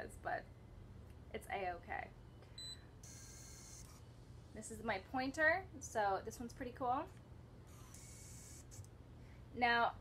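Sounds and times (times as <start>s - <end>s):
prosthetic hand motors whirring: 3.0s - 4.0s, 7.7s - 8.9s.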